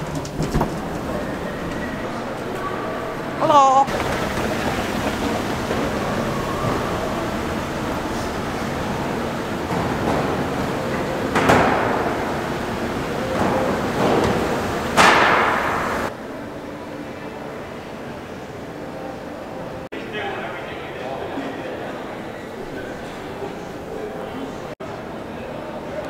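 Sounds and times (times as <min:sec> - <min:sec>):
shopping centre hubbub: 0:00.0 - 0:26.0.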